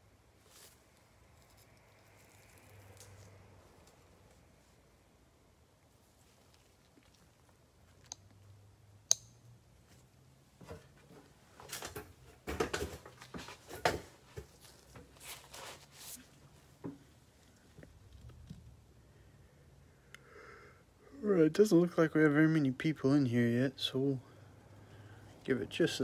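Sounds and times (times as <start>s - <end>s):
rustling and scuffing: 0.4s - 4.6s, 9.8s - 17.6s.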